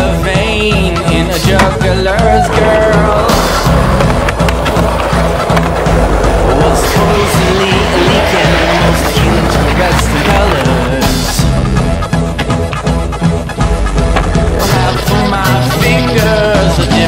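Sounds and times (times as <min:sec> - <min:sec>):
music with beat and singing: 0:00.0 - 0:17.0
skateboard wheels rolling on concrete: 0:00.0 - 0:17.0
skateboard scraping: 0:01.5 - 0:11.6.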